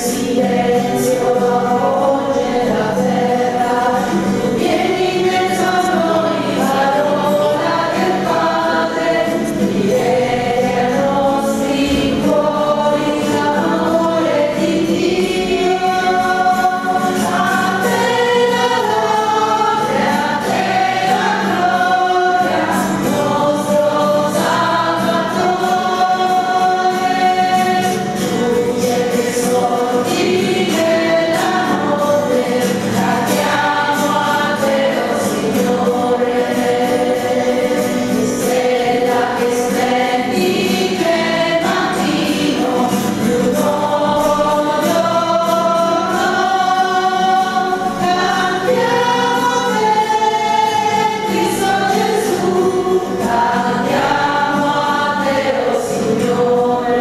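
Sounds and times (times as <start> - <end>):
choir singing a hymn: 0.0 - 57.0
guitar accompaniment: 0.0 - 57.0.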